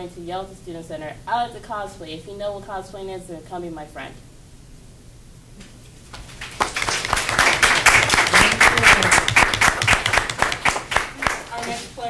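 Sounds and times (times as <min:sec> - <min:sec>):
audience applauding: 0:06.1 - 0:11.9.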